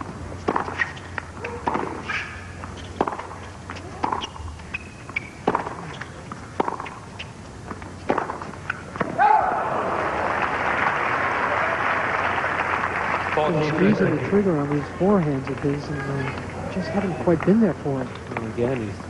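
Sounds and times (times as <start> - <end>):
tennis ball bouncing: 0.0 - 9.2
racket striking tennis ball: 0.4 - 9.2
crowd applauding: 9.4 - 15.0.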